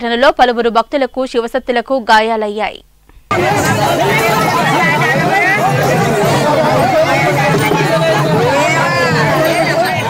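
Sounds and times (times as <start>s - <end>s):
crowd shouting and talking: 3.3s - 10.0s.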